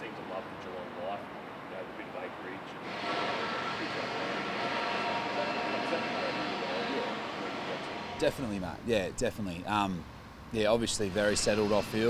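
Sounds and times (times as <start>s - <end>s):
steady mechanical noise with whine: 0.0s - 12.0s.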